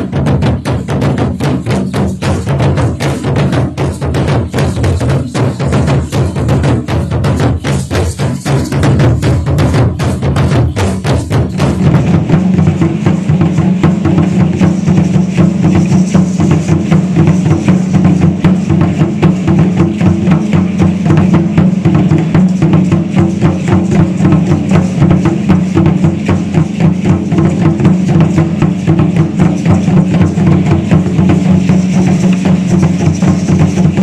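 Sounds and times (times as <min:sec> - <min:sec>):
fast steady drumming: 0:00.0 - 0:34.0.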